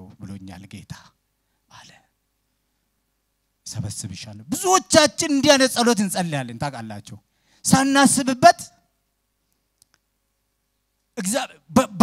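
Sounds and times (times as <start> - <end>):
faint clicks: 9.4 - 10.1.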